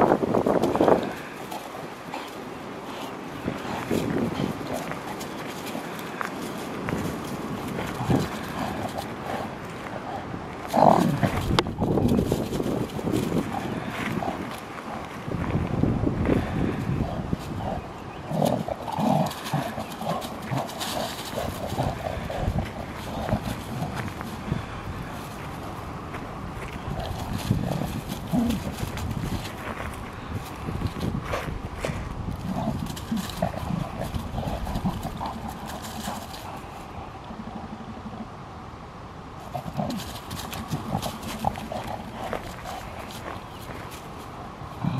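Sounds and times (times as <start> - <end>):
paws scuffing on dry leaves: 0.0 - 37.0, 39.4 - 44.5
dogs play-growling: 0.0 - 38.6, 39.2 - 44.9.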